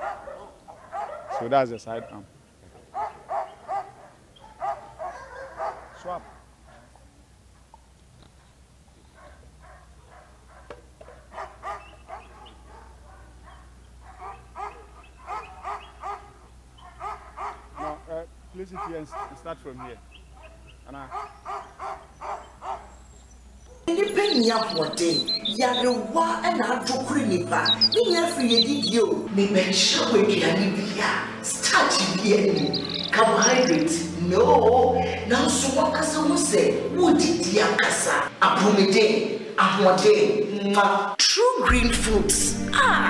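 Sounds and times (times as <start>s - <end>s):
dog barking: 0.0s - 7.7s, 8.4s - 23.0s, 23.6s - 24.0s.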